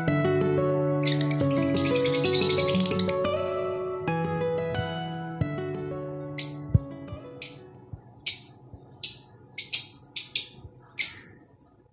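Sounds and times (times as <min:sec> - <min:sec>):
lovebird chirping: 0:01.0 - 0:11.9.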